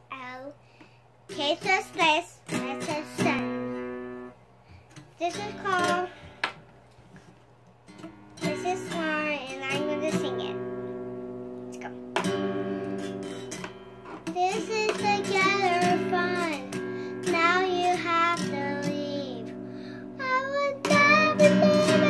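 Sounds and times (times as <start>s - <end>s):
girl singing: 1.3s - 4.2s, 5.2s - 6.3s, 8.4s - 10.8s, 14.2s - 22.0s
acoustic guitar strumming: 1.3s - 6.8s, 7.8s - 22.0s.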